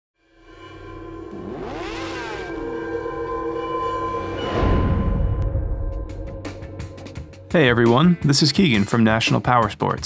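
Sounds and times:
sweeping synth tones: 0.2s - 7.1s
synthesized drone: 0.2s - 7.2s.

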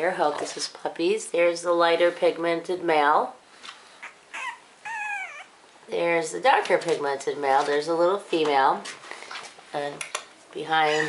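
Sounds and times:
puppy whimpering: 4.0s - 5.6s.

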